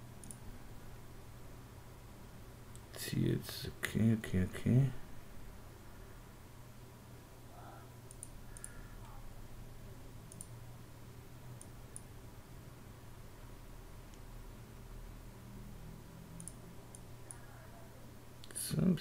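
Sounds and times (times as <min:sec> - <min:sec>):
low steady hum: 0:00.0 - 0:19.0
computer mouse clicks: 0:00.2 - 0:00.4, 0:08.1 - 0:09.1, 0:10.3 - 0:10.6, 0:11.6 - 0:12.1, 0:16.4 - 0:17.4.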